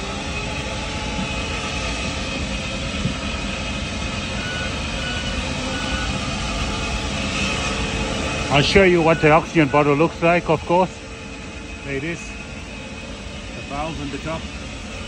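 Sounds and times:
faint whining tones: 0.0 - 15.0
machinery drone: 0.0 - 15.0.

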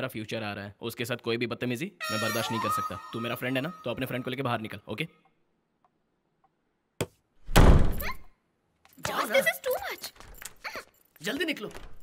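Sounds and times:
loud heavy thud: 7.5 - 8.0.

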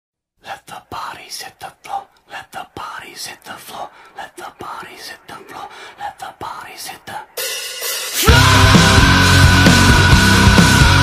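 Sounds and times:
person whispering: 0.4 - 7.4.

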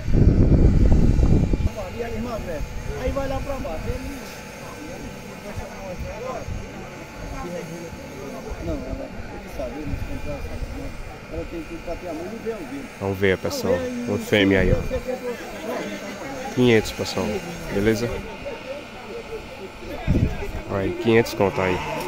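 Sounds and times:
distant people talking: 0.0 - 22.0.

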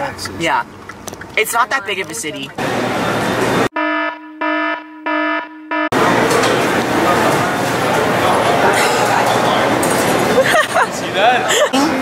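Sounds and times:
indoor crowd hubbub: 2.2 - 3.7, 5.9 - 12.0
pulsing buzzing electronic alarm: 3.7 - 5.9.

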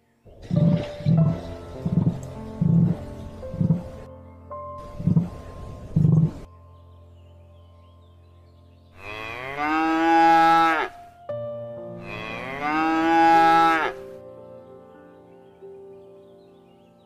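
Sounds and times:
cow mooing: 9.0 - 11.0, 12.0 - 14.0.

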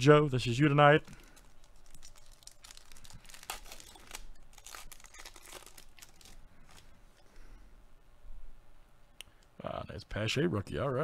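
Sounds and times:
foil wrapper tearing and crinkling: 1.0 - 6.9.

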